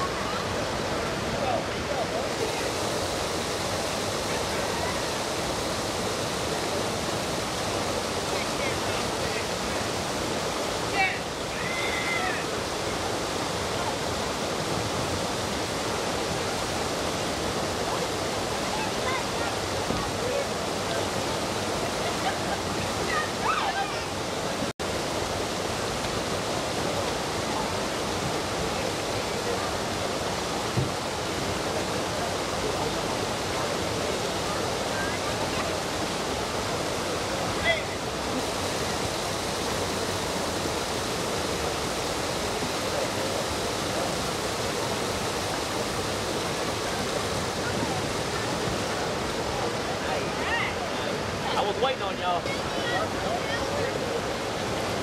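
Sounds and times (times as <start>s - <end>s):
river water rushing over rocks: 0.0s - 55.0s.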